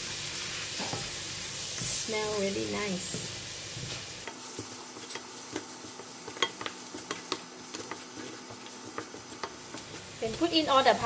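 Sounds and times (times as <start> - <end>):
onions sizzling in oil: 0.0 - 11.0
wooden spatula scraping pan: 3.8 - 11.0.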